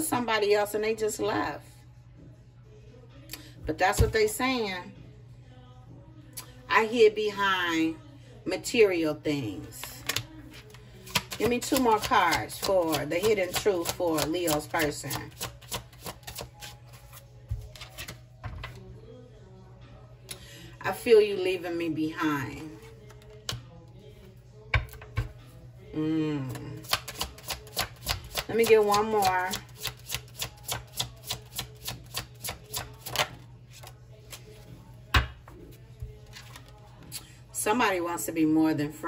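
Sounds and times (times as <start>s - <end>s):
cards being shuffled: 9.7s - 18.8s, 26.8s - 28.5s, 29.6s - 34.8s, 36.0s - 36.8s
card taps: 10.0s - 12.3s.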